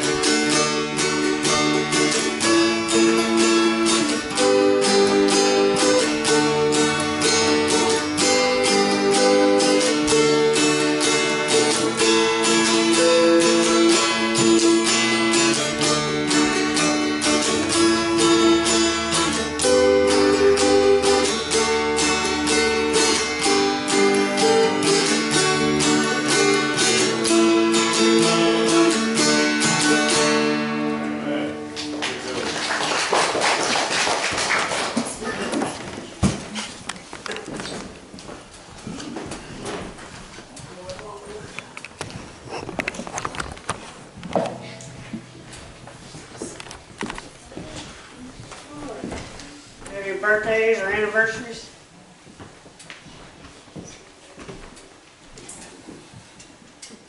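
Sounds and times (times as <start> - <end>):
acoustic guitar and dulcimer picking: 0.0 - 32.0, 38.5 - 51.6.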